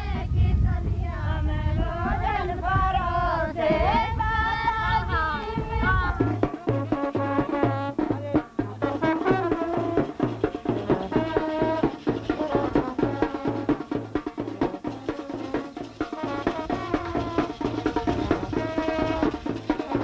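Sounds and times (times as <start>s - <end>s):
quick steady drum beat: 1.9s - 20.0s
brass band music: 6.4s - 20.0s.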